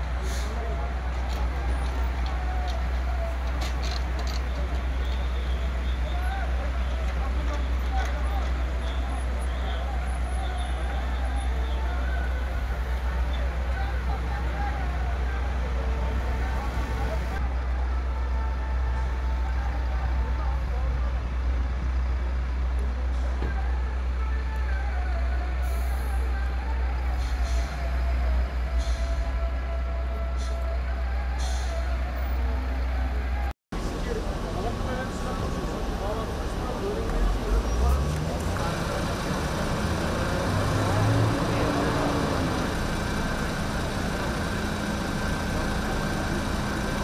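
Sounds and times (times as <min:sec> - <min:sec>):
fire truck engines idling: 0:00.0 - 0:47.0
indistinct voices talking: 0:25.6 - 0:47.0.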